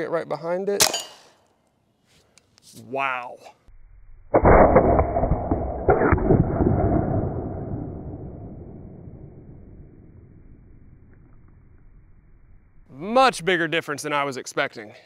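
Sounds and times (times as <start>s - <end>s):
slowed air rifle shot: 4.3s - 11.3s.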